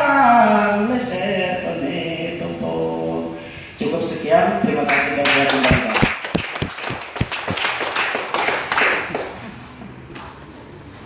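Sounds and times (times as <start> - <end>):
small group clapping: 4.9 - 9.6
low thuds: 5.7 - 7.7.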